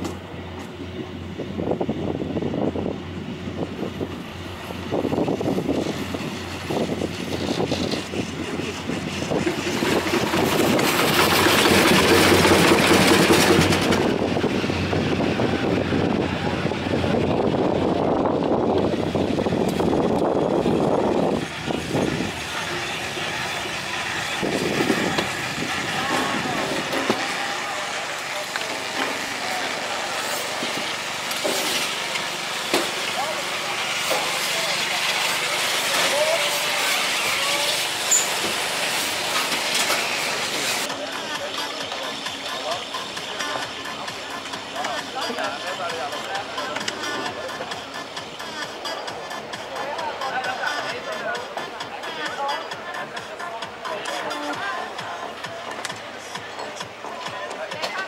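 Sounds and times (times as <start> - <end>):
people talking: 6.7 - 58.0.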